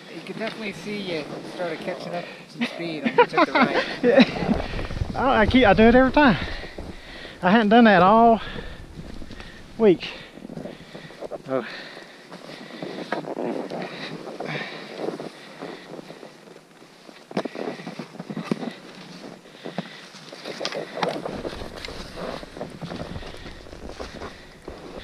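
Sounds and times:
skier scraping through snow: 0.0s - 25.0s
wind noise on microphone: 3.7s - 11.5s, 20.5s - 25.0s.

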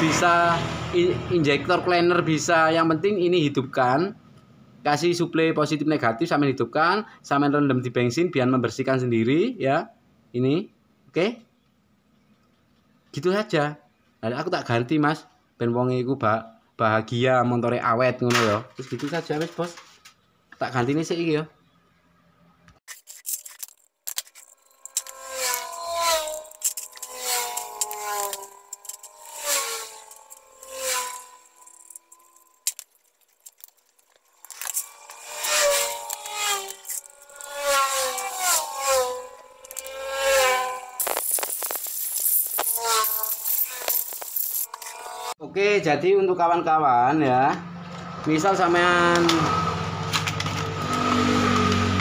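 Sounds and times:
man talking: 0.0s - 4.1s, 13.2s - 19.8s, 20.6s - 21.5s, 45.4s - 47.6s, 48.2s - 49.5s
metal parts clattering in tray: 18.8s - 20.0s, 22.9s - 25.2s, 41.0s - 44.9s.

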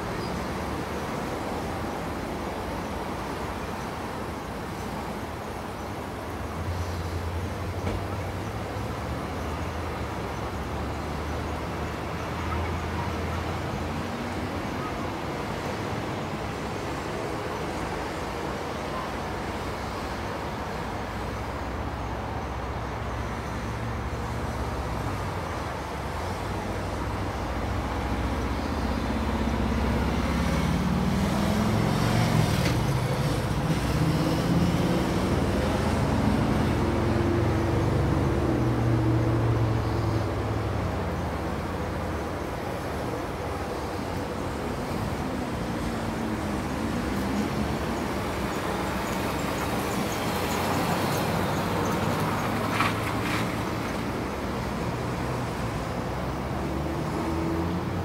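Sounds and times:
road traffic noise: 0.0s - 58.0s
vehicle engine passing: 29.2s - 39.7s.

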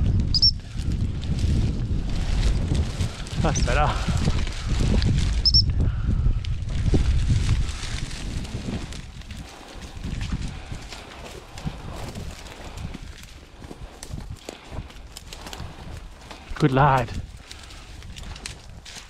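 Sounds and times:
crunching through dry grass: 0.0s - 19.0s
wind rumbling on microphone: 0.0s - 19.0s.

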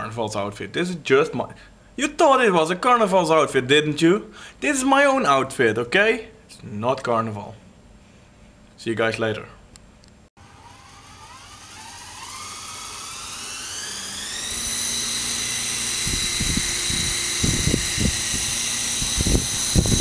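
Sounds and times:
toy helicopter whine: 10.4s - 20.0s.

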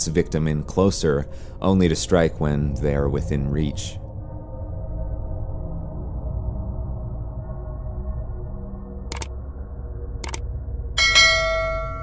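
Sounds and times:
notification bell chime: 11.0s - 12.0s.

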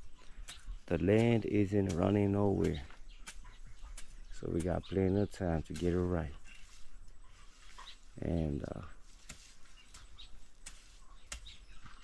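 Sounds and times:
bird chirps: 0.0s - 12.0s.

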